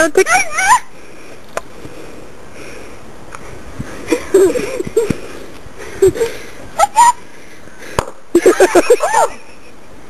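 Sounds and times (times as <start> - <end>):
bursts of laughter: 8.3 - 9.8.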